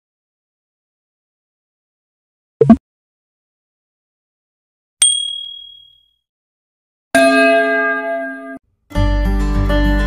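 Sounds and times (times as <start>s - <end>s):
bright bell ding: 5.0s - 6.1s.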